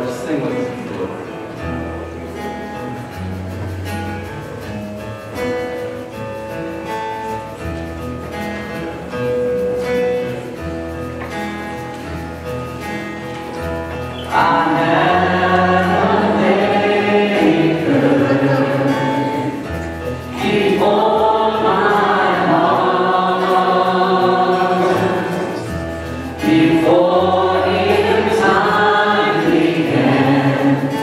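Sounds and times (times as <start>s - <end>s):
guitars: 0.0s - 31.0s
keyboards: 0.0s - 31.0s
held bass notes: 1.0s - 31.0s
choir singing: 14.2s - 31.0s.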